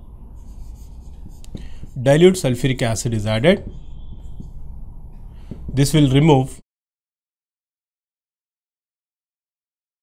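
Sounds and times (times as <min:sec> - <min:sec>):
low room hum: 0:00.0 - 0:06.6
marker scratching on whiteboard: 0:00.3 - 0:06.2.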